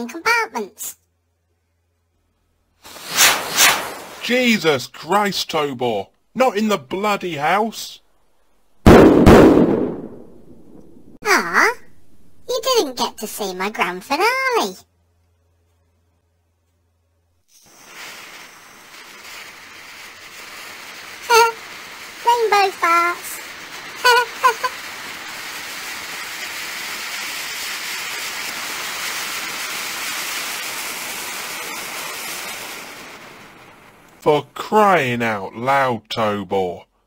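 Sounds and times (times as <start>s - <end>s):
firework rushing hiss: 2.8s - 4.8s, 8.8s - 11.2s, 17.4s - 34.3s.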